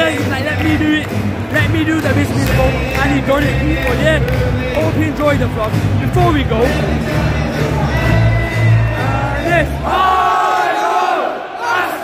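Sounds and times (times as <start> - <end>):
stadium crowd shouting and cheering: 0.0 - 12.0.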